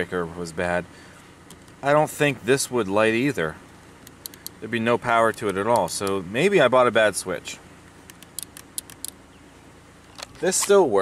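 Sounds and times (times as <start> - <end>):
plastic switch clicks: 8.1 - 9.2.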